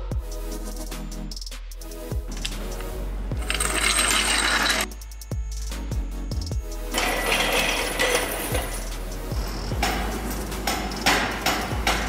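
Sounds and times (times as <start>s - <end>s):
electronic music with drum beat: 0.0s - 12.0s
mechanical hiss with rattling: 7.9s - 12.0s.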